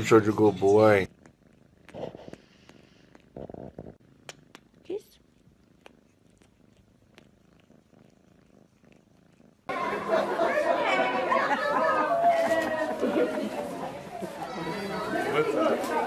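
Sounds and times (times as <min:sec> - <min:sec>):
cat purring: 0:00.0 - 0:09.9
chatter of voices: 0:09.7 - 0:16.0.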